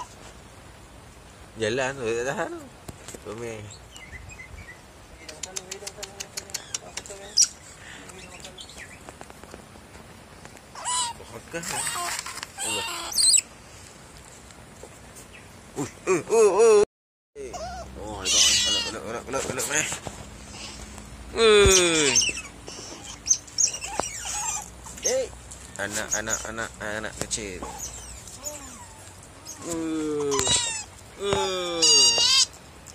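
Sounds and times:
otter chirping and squeaking: 3.7s - 9.0s, 10.7s - 13.5s, 17.4s - 19.9s, 21.6s - 26.8s, 27.4s - 32.6s.

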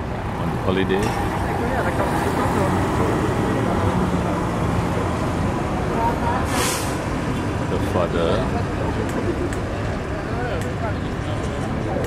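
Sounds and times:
traffic noise: 0.0s - 12.0s
short hiss: 6.5s - 7.0s.

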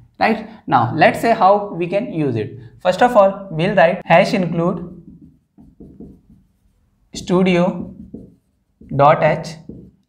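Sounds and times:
marker writing on whiteboard: 4.2s - 10.0s.

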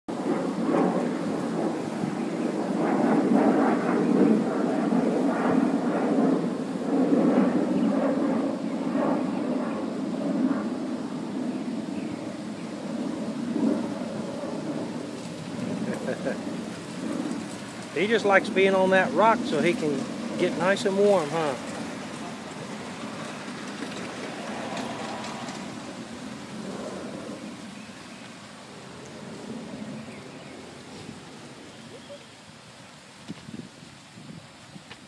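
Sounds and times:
wind buffeting microphone: 0.1s - 35.0s.

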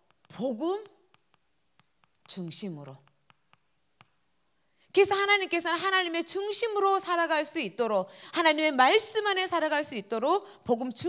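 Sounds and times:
chalk clicking on blackboard: 0.0s - 4.3s.

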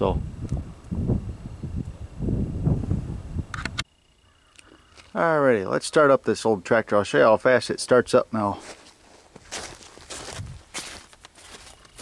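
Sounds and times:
wind buffeting microphone: 0.0s - 3.8s, 9.6s - 11.0s
sharp clicks: 3.5s - 3.9s.

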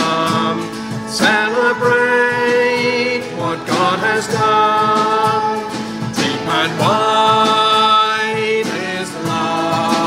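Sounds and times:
instrumental backing: 0.0s - 10.0s
person singing worship song: 0.0s - 10.0s.

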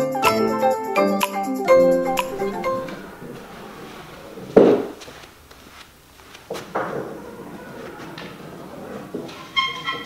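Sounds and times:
quiet room noise: 1.7s - 10.0s.

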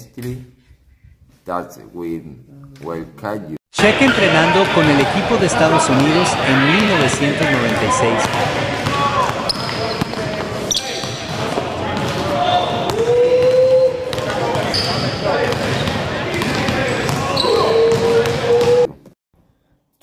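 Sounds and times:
voices in large hall: 0.0s - 18.9s.

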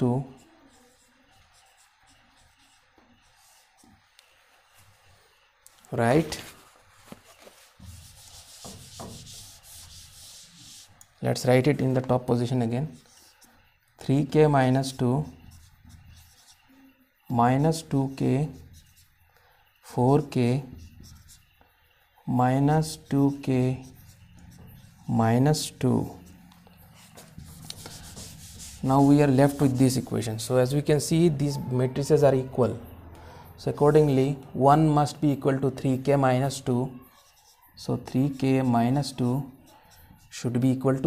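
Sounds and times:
eraser scrubbing a whiteboard: 0.0s - 5.1s, 7.2s - 11.1s, 15.2s - 19.2s, 22.5s - 30.4s, 35.4s - 41.0s
duster scrubbing a whiteboard: 7.5s - 10.9s, 26.9s - 30.2s.

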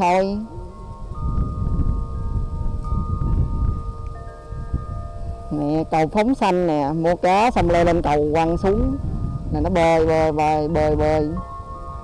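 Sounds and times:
metal wind chime ringing: 0.0s - 12.0s
wind rumble on microphone: 0.0s - 12.0s.

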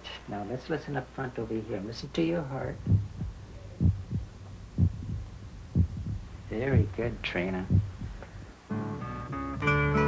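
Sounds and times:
low steady hum: 0.0s - 10.0s
heartbeat through stethoscope: 2.7s - 6.9s, 7.5s - 8.6s.

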